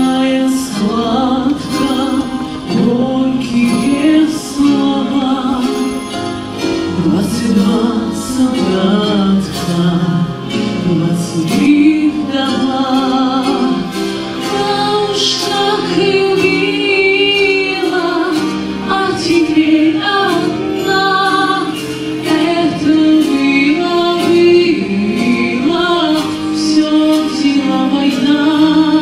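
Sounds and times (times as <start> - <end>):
instrumental accompaniment: 0.0 - 29.0
woman singing with vibrato: 0.0 - 29.0.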